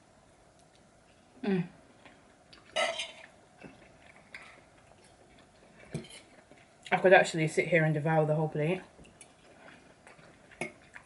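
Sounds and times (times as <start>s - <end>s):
hummed mm of enjoyment: 1.4s - 1.8s.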